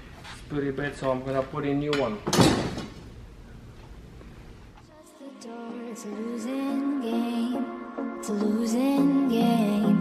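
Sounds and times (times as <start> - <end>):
music: 4.9 - 10.0.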